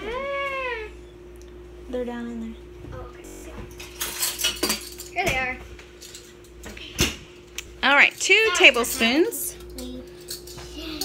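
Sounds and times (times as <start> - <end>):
steady low hum: 0.0 - 11.0
utensils clattering in drawer: 3.8 - 5.2.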